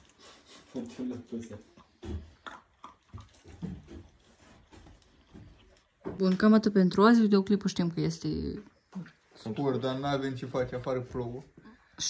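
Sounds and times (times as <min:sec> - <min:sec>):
puppies crunching dry kibble: 0:00.0 - 0:06.2.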